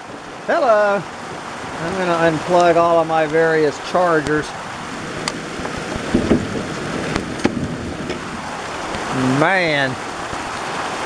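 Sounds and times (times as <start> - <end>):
heavy rain falling: 0.0 - 11.0
sharp knocks and clicks: 7.1 - 8.3.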